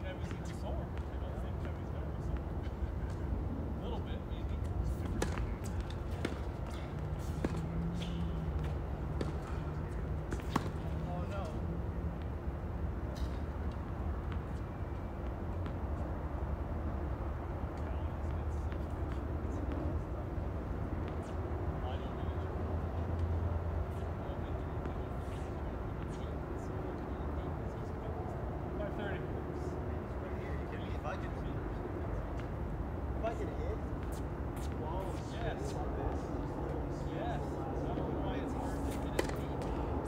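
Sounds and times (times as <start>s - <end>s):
distant people talking: 34.7s - 40.0s.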